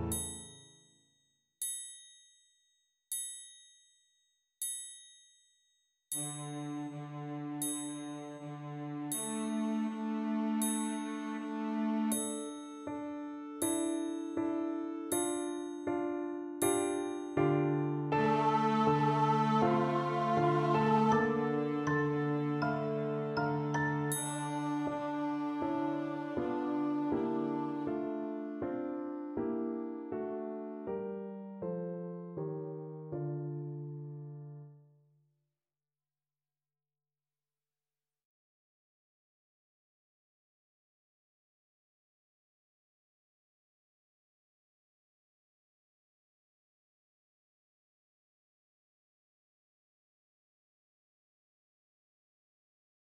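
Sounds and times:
soft piano chord: 0.0s - 0.5s, 12.2s - 34.8s
triangle ringing: 0.0s - 1.0s, 1.6s - 6.6s, 7.6s - 8.2s, 10.6s - 11.3s, 23.4s - 24.9s
clarinet and cello notes: 18.1s - 28.7s.

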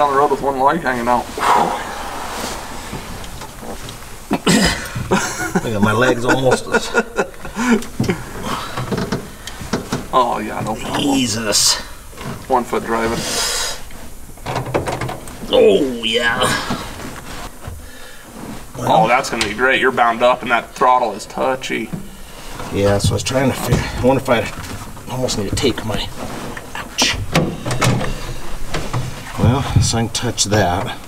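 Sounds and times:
clothing rustling: 0.0s - 6.3s, 15.3s - 20.2s
low steady hum: 0.0s - 31.0s
short breathy hiss: 1.2s - 5.0s, 13.1s - 13.9s
light knocks and rustles: 7.6s - 11.1s, 21.8s - 31.0s.

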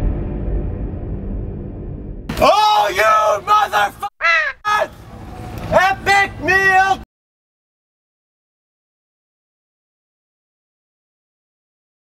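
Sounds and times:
man shouting: 2.3s - 5.0s, 5.7s - 7.1s.

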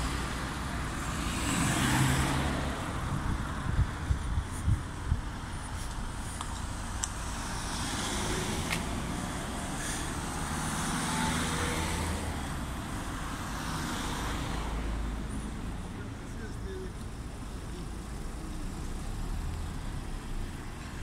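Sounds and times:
cars passing slowly: 0.0s - 21.0s.

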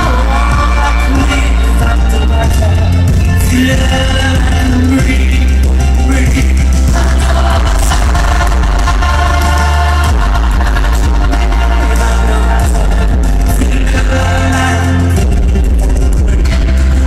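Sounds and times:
heavy bass: 0.0s - 17.0s
live pop band playing: 0.0s - 17.0s
person singing: 0.0s - 17.0s.

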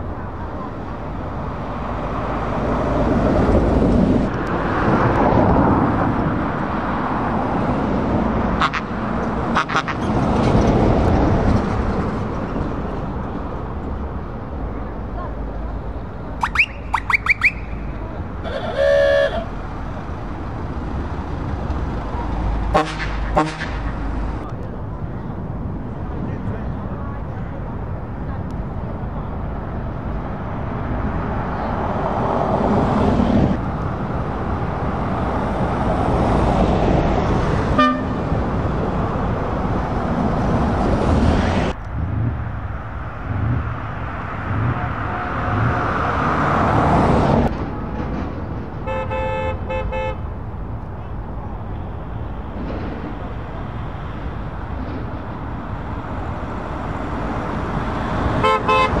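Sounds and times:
vans driving past: 0.0s - 59.0s
horns tooting: 16.4s - 19.6s, 22.7s - 24.0s, 37.8s - 38.3s, 48.8s - 50.3s, 58.4s - 59.0s.

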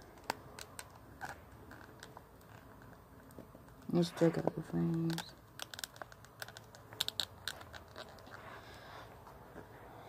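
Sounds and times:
plastic pieces clicking: 4.8s - 8.4s.

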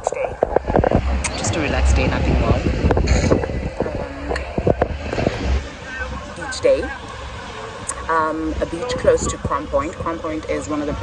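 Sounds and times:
woman talking: 0.0s - 0.4s, 1.3s - 4.7s, 6.4s - 7.0s, 7.9s - 11.0s
wind buffeting microphone: 0.0s - 11.0s.

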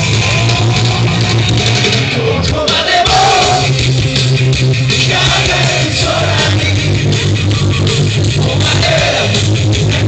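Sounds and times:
live rock band playing: 0.0s - 10.0s
person singing: 2.1s - 3.7s.

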